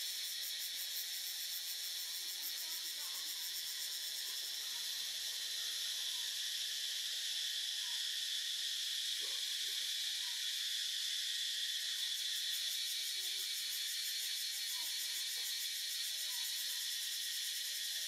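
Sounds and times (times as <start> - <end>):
insects chorus: 0.0 - 18.0.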